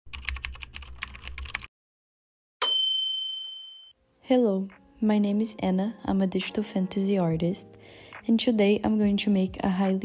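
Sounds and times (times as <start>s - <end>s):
keyboard typing clicks: 0.1s - 1.7s
bright bell ding: 2.6s - 4.0s.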